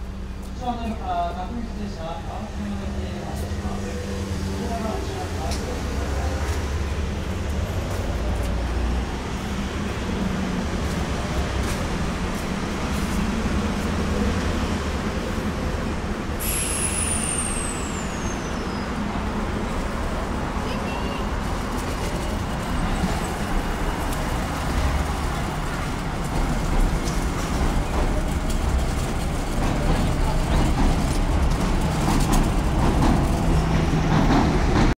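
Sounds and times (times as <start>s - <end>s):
low station rumble: 0.0s - 35.0s.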